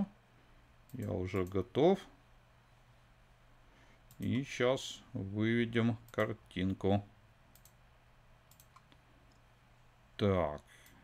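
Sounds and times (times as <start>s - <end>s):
faint computer clicks: 0.8s - 1.6s, 4.0s - 4.3s, 7.5s - 7.8s, 8.4s - 9.5s.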